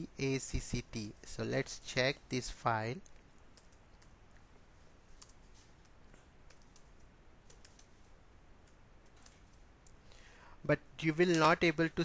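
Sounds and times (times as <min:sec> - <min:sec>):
faint keyboard keystrokes: 0:05.1 - 0:10.0.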